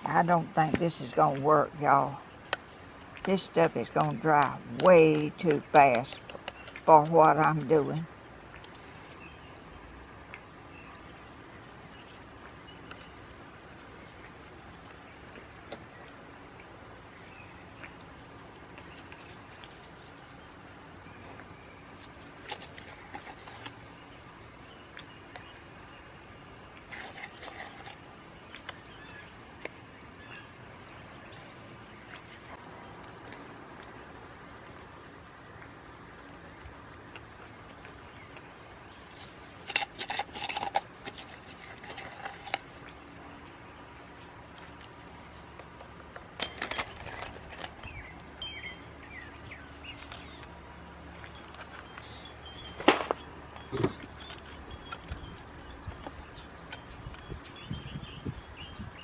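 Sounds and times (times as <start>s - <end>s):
bird chirps: 46.4s - 59.0s.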